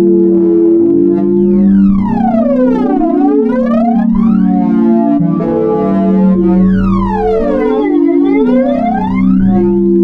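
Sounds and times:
held synthesizer chord: 0:00.0 - 0:10.0
gliding pitched tone: 0:00.9 - 0:10.0.

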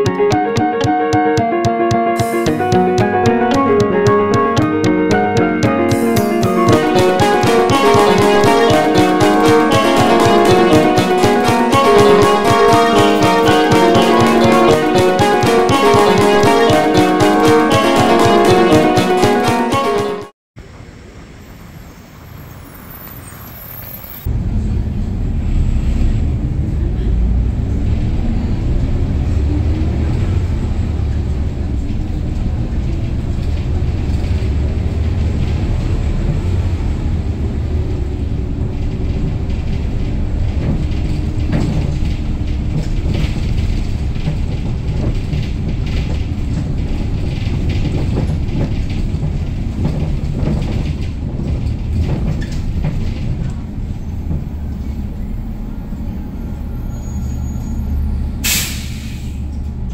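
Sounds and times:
bus engine droning: 0:00.0 - 0:59.9
street sound: 0:00.0 - 0:59.9
road rumble: 0:20.6 - 0:59.9.

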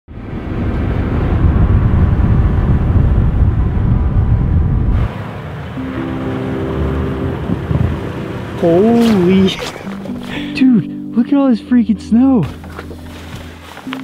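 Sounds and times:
heavy wind rush: 0:00.1 - 0:10.6
steady tones: 0:03.8 - 0:11.2.

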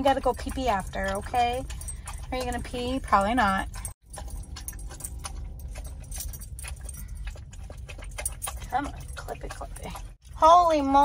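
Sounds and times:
puppy lapping water: 0:00.0 - 0:11.0
steady low hum: 0:00.0 - 0:11.0.

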